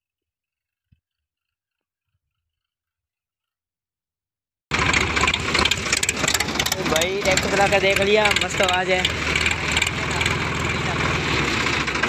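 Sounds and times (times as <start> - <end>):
tractor diesel engine running: 4.7 - 12.0.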